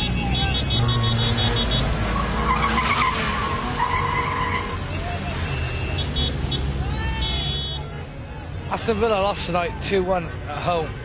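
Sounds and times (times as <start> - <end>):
cars driving by: 0.0 - 11.0.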